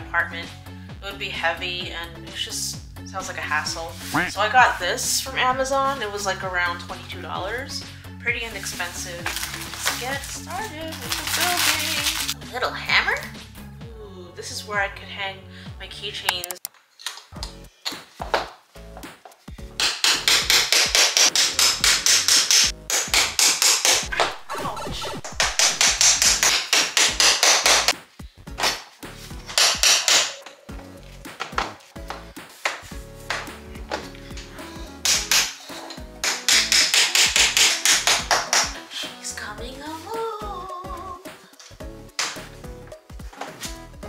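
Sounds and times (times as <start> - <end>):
background music: 0.0 - 16.6, 17.3 - 44.0
small hammer tapping: 36.2 - 38.8.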